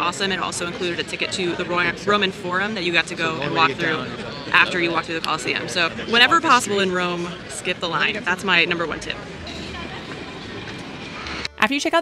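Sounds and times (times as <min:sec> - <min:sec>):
traffic rumble: 0:00.0 - 0:11.7.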